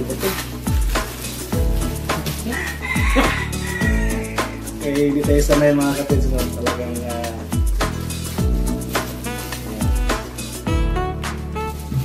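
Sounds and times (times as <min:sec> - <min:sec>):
background music with deep bass: 0:00.0 - 0:12.0.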